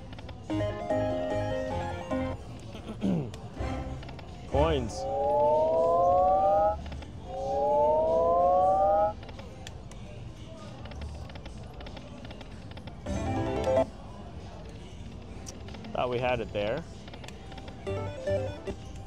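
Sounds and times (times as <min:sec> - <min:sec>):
slot machine jingle: 0:00.5 - 0:02.4, 0:03.6 - 0:06.8, 0:13.1 - 0:13.9, 0:17.9 - 0:18.8
rising electronic chord: 0:04.6 - 0:09.1.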